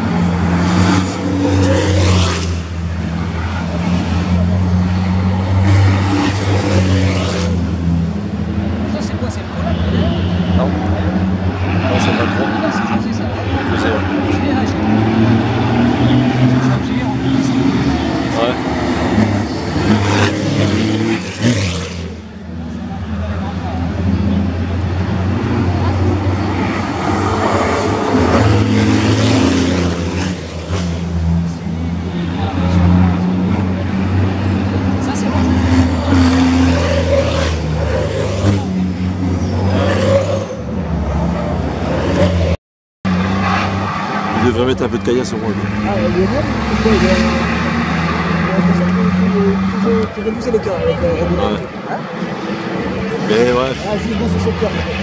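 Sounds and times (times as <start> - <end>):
diesel truck engines passing: 0.0 - 55.0.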